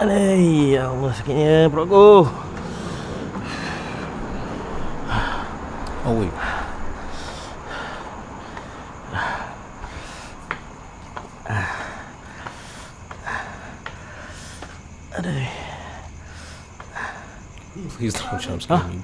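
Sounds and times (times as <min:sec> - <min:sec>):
low steady hum: 0:00.0 - 0:18.9
person breathing heavily: 0:02.0 - 0:17.6.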